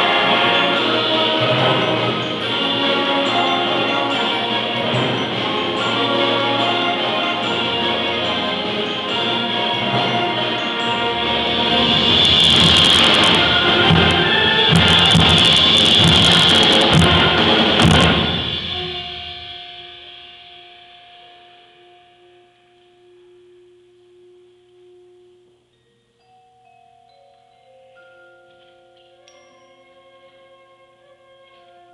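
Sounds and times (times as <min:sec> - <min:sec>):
concert band playing loudly: 0:00.0 - 0:20.2
percussion hits: 0:00.0 - 0:25.6.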